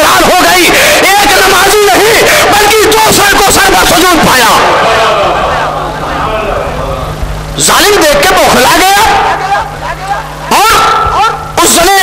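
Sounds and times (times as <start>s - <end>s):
man preaching into a microphone: 0.0s - 5.1s, 7.6s - 12.0s.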